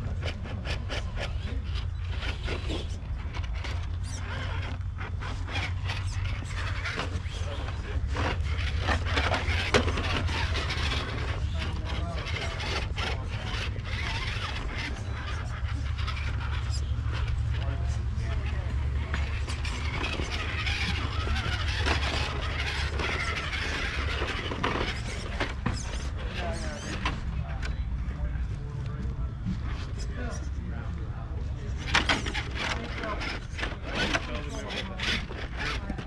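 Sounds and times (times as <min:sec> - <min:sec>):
electric motor whining: 0:00.0 - 0:26.7
people talking: 0:06.2 - 0:36.0.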